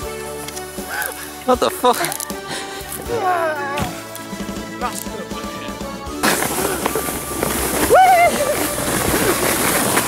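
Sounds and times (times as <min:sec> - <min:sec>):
sledge sliding on snow: 0:06.1 - 0:10.0.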